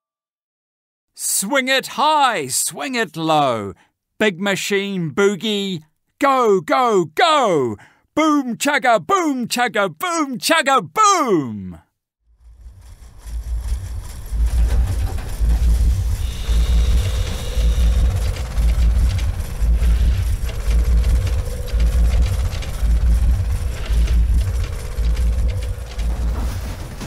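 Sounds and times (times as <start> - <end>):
heavy machinery engine chugging: 12.4 - 27.0
wavering whine: 12.4 - 27.0.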